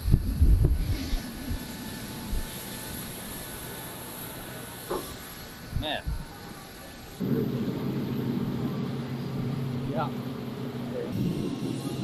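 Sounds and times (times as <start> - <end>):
wind buffeting microphone: 0.0 - 2.5
low mechanical hum of machinery: 0.0 - 12.0.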